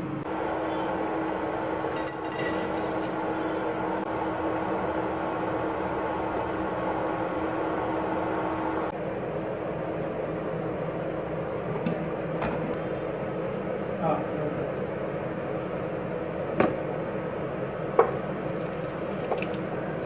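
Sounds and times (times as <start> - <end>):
kitchen appliance fan humming: 0.0 - 20.0.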